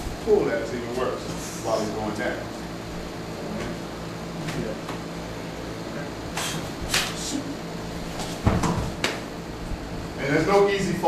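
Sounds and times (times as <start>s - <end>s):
scuffle sounds: 8.0s - 8.5s
body thudding on floor: 8.2s - 9.2s.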